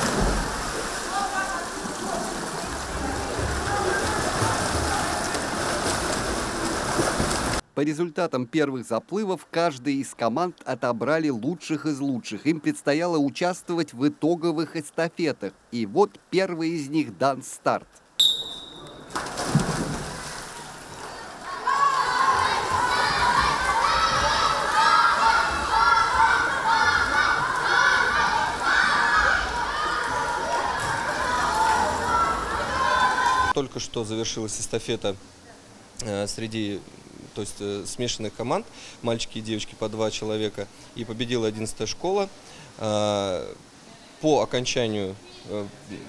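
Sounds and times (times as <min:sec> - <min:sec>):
swimmers splashing: 0:00.0 - 0:07.6, 0:18.2 - 0:33.6
water noise: 0:00.0 - 0:07.6, 0:18.0 - 0:33.6
children's voices: 0:01.1 - 0:05.4, 0:20.5 - 0:33.5
high start signal tone: 0:18.2 - 0:19.0.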